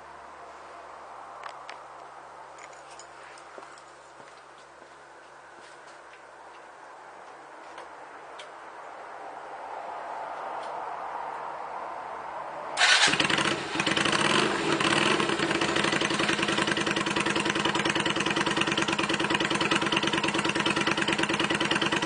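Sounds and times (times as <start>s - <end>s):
motorcycle engine starting: 12.8s - 22.0s.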